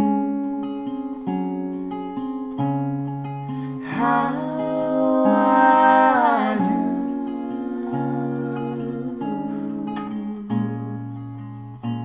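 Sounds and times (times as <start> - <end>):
acoustic guitar chords: 0.0 - 12.0.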